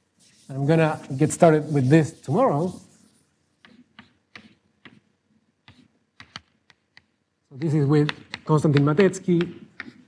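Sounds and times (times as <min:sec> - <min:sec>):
chalk tapping and scraping on blackboard: 0:00.1 - 0:10.0.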